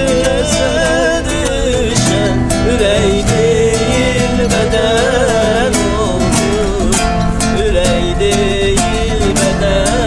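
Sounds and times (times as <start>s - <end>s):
acoustic guitars strumming: 0.0s - 10.0s
man singing: 0.0s - 10.0s.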